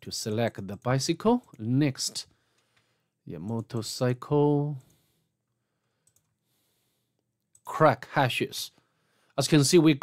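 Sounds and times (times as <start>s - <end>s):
faint mouse clicks: 6.0s - 6.3s.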